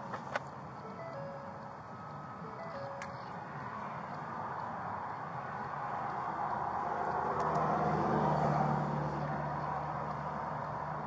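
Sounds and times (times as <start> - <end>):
vehicle and traffic noise: 0.0 - 11.0
electronic tones melody: 0.8 - 3.8.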